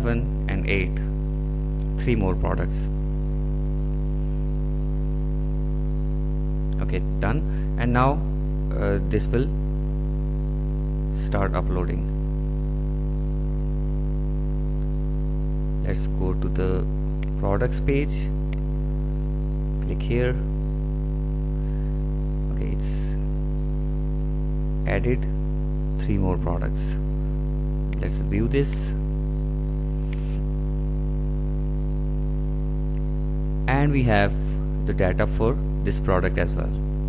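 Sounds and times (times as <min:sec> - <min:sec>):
electrical mains hum: 0:00.0 - 0:37.0.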